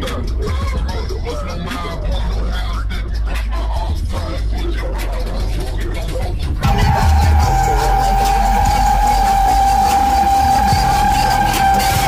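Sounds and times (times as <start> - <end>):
low engine rumble: 0.0 - 12.0.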